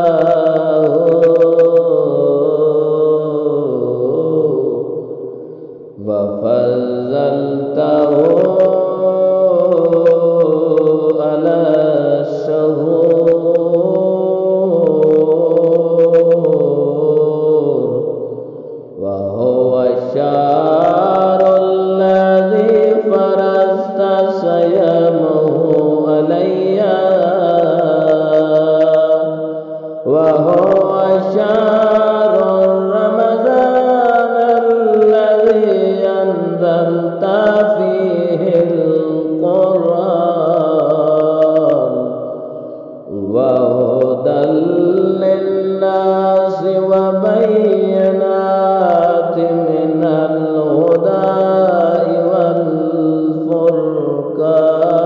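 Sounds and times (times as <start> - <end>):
person chanting: 0.0 - 55.0.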